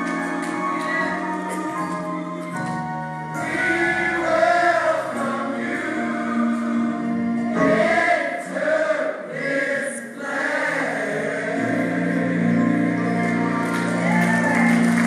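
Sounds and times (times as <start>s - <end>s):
gospel choir singing: 0.0s - 15.0s.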